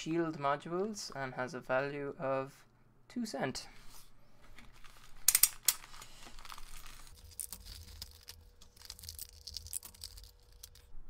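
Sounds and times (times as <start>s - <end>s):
crinkling plastic and foil packaging: 4.4s - 11.0s
plastic mailer tearing: 4.6s - 10.9s.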